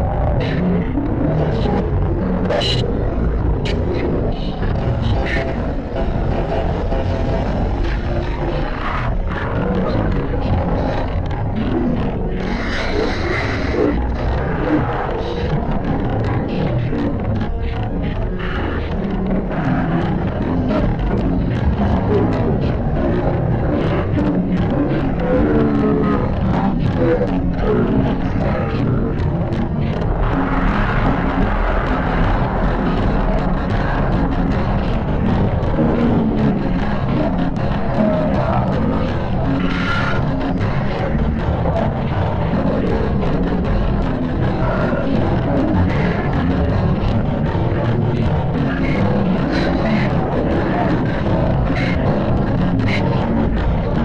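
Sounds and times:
effects-processed music: 0:00.0 - 0:54.0.

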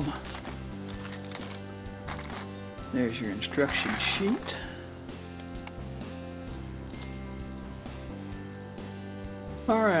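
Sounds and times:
paper booklet rustling: 0:00.0 - 0:02.5, 0:03.6 - 0:04.6
instrumental background music: 0:00.0 - 0:10.0.

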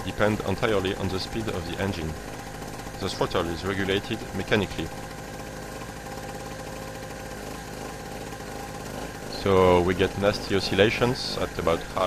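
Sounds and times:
portable generator engine running: 0:00.0 - 0:12.0.

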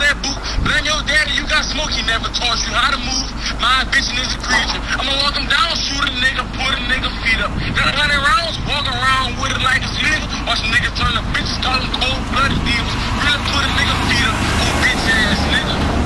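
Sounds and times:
low steady rumble: 0:00.0 - 0:16.0
people talking: 0:00.0 - 0:16.0.

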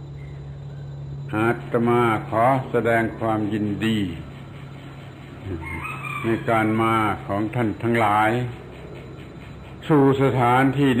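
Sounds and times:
man speaking: 0:01.3 - 0:04.3, 0:05.4 - 0:08.6, 0:09.8 - 0:11.0
rooster crowing: 0:04.5 - 0:07.3.

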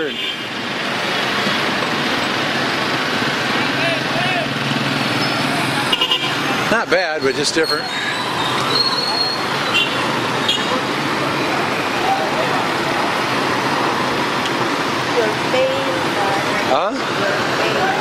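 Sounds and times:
street traffic: 0:00.0 - 0:18.0
faint voices: 0:05.3 - 0:14.4.

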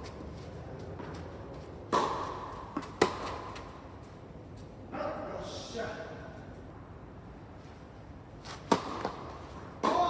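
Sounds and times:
racket striking ball: 0:01.9 - 0:03.7, 0:08.6 - 0:10.0.

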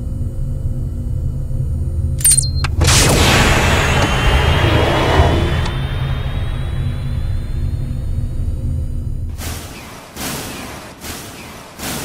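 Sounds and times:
deep rumble with low drone: 0:00.0 - 0:09.6.

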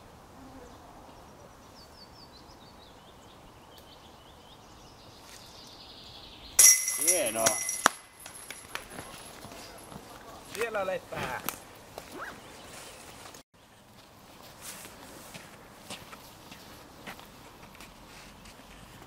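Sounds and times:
disc striking metal basket chains: 0:06.6 - 0:09.4.

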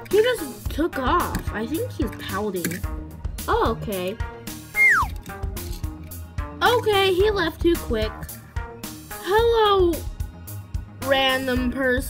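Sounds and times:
background music: 0:00.0 - 0:12.0
falling whistle-like tone: 0:04.8 - 0:05.1.

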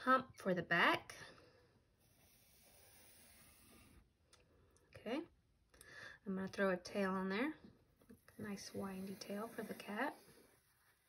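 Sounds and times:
pencil stroke on paper: 0:02.0 - 0:04.0, 0:08.2 - 0:11.0.

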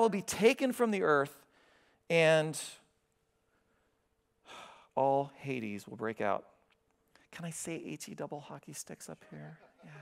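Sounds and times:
man speaking: 0:00.0 - 0:02.9, 0:04.9 - 0:06.6, 0:07.2 - 0:10.0.

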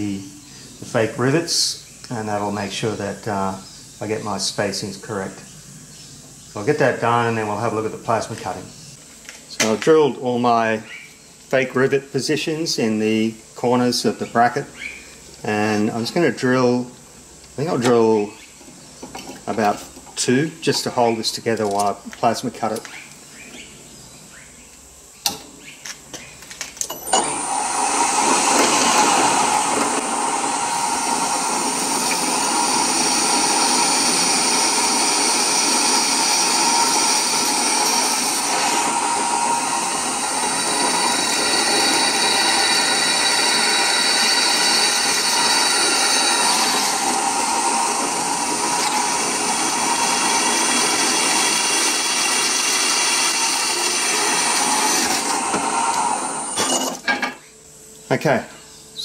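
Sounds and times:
drill press bit cutting steel: 0:26.9 - 0:57.1.

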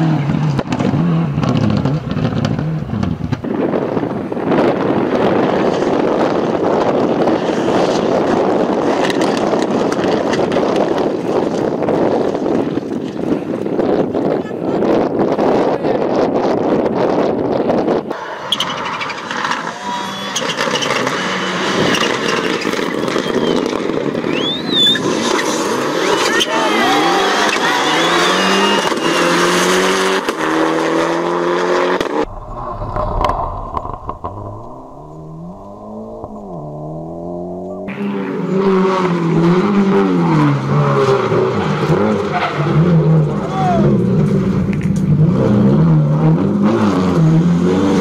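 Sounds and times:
rally car engines revving: 0:00.0 - 0:48.0
spectators shouting: 0:26.2 - 0:29.2.

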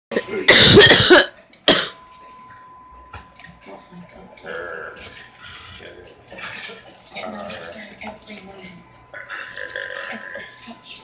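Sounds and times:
person coughing hard: 0:00.5 - 0:02.0.

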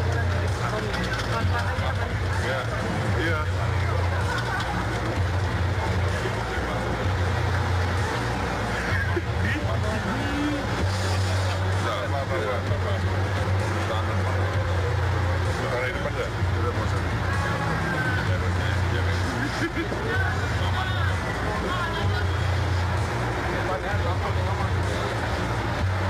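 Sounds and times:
indistinct voices: 0:00.0 - 0:26.0
vehicle engines rumbling: 0:00.0 - 0:26.0.

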